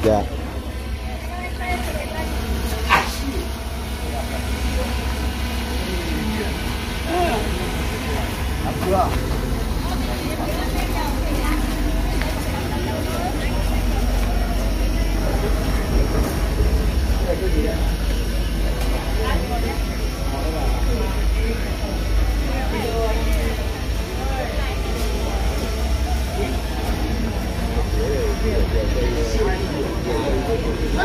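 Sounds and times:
indistinct talk of people: 0.0 - 31.0
steady low rumble: 0.0 - 31.0.

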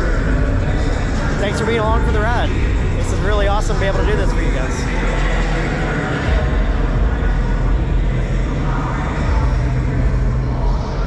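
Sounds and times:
low rumble of exhibition hall: 0.0 - 11.0.

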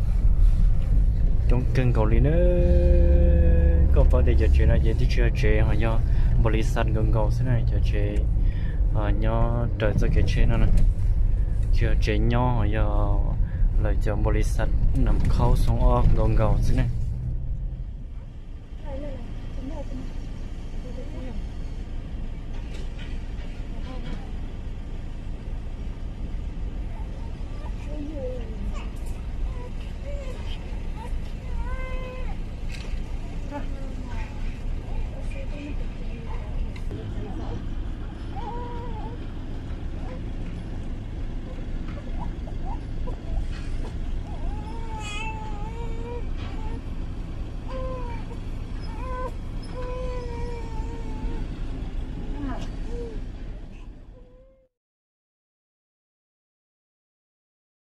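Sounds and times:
low rumble: 0.0 - 21.0
vehicle noise: 0.0 - 54.4
faint voices: 26.6 - 47.0.

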